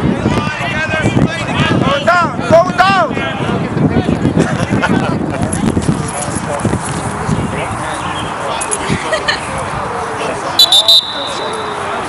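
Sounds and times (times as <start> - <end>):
outdoor background noise: 0.0 - 12.0
people talking indistinctly: 0.0 - 12.0.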